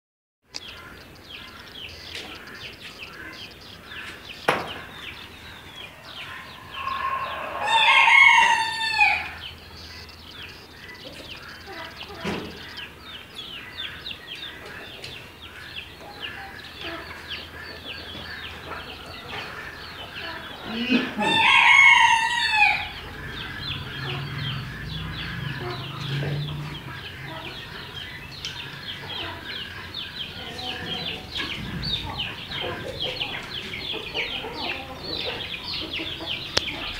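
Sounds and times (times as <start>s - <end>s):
poultry chicks peeping: 0.5s - 36.9s
rooster crowing: 6.0s - 9.5s, 21.0s - 27.7s.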